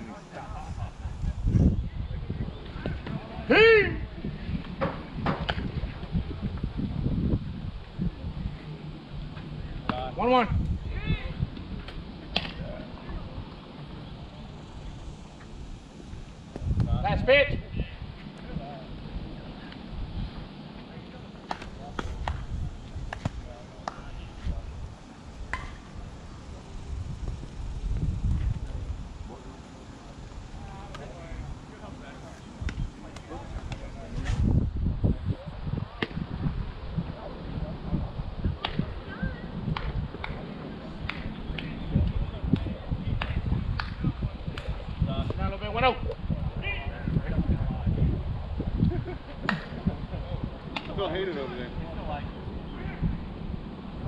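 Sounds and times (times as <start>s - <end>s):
distant players' voices: 0.0s - 54.0s
wind gusts on microphone: 0.0s - 54.0s.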